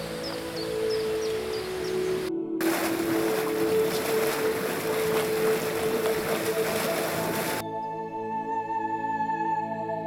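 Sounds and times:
geyser spouting water: 2.6s - 7.6s.

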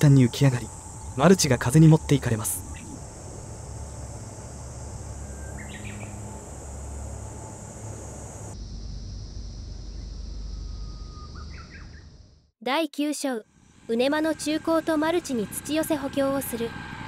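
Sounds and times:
wind rumbling on microphone: 0.0s - 8.5s
high insect drone: 0.0s - 12.5s, 13.4s - 17.0s.

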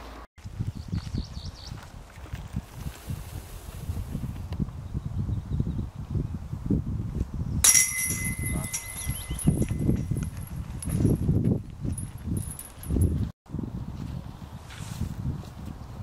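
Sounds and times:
wind on microphone: 0.4s - 16.0s
disc hitting metal chains: 7.6s - 11.2s
chains ringing: 7.6s - 11.3s, 11.9s - 13.2s.

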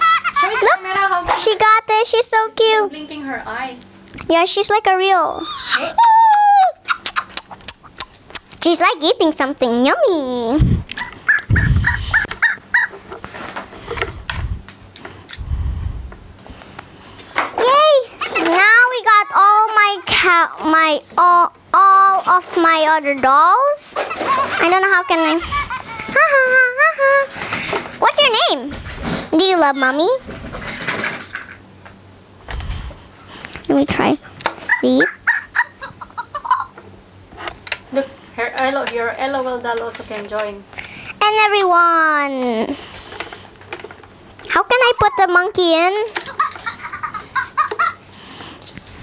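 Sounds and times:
toy monkey high squeaks: 6.8s - 7.6s
toy monkey squeaky calls: 6.8s - 7.6s, 11.0s - 13.0s, 34.6s - 36.7s.

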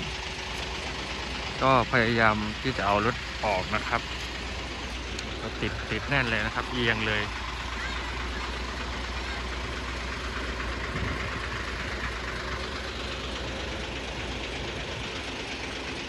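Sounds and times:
diesel truck engine idling: 0.0s - 16.0s.

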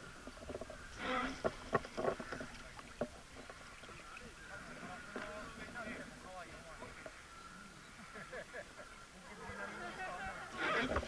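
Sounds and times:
water splashing against boat: 0.0s - 7.4s, 9.4s - 11.0s.

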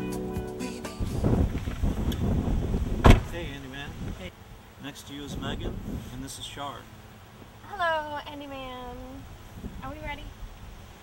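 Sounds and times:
car door shutting: 1.0s - 4.2s.

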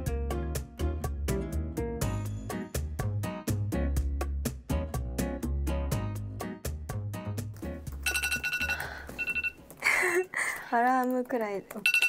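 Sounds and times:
background music: 0.0s - 10.6s
electronic timer alarm ringing: 8.0s - 9.6s, 11.8s - 12.0s.

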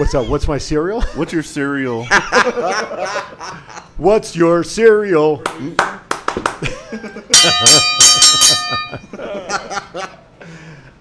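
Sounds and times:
bell struck rapidly: 7.4s - 9.1s.

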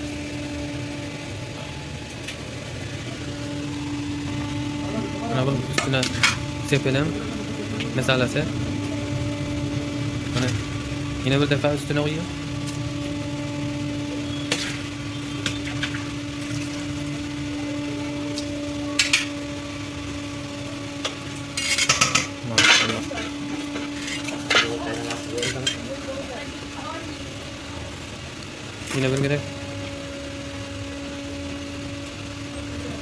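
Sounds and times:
steady low hum: 0.0s - 33.0s
metal utensils scraping steel pots: 21.5s - 25.9s.

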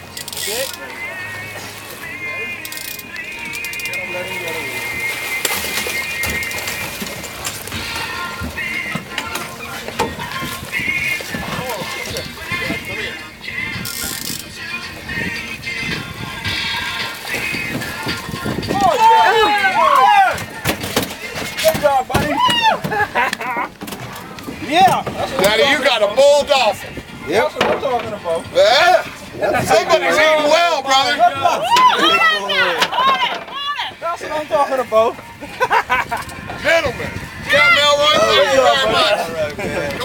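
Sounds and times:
excited shouting: 18.6s - 20.6s, 21.8s - 23.2s, 29.4s - 34.3s, 37.4s - 39.5s
knocks on boat: 20.4s - 25.9s, 27.6s - 28.2s.

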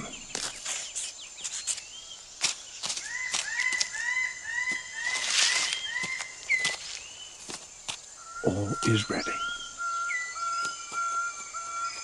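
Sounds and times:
high insect hum: 0.0s - 12.0s.

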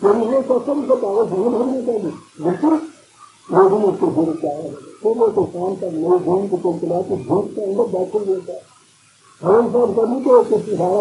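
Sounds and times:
man speaking: 0.0s - 8.7s, 9.4s - 11.0s.

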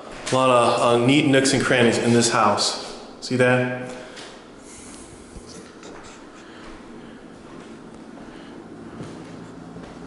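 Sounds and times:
handheld camera rustling and scuffing: 8.9s - 10.0s.

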